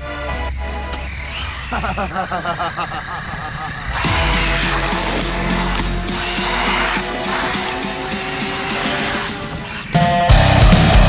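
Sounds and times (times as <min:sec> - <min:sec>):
background music: 0:00.0 - 0:03.0, 0:04.0 - 0:11.0
rc car motor driving on asphalt: 0:00.8 - 0:10.6.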